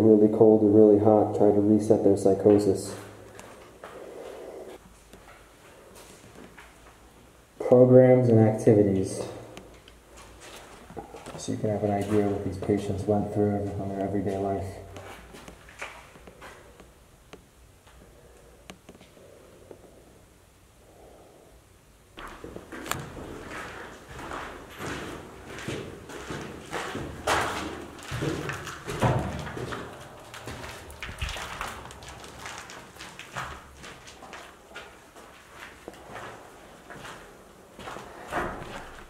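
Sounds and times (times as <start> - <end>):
footsteps crunching on debris: 22.2 - 39.0.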